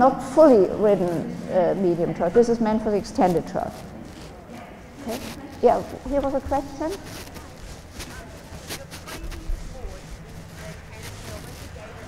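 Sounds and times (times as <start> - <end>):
low hum of large hall: 0.0 - 12.0.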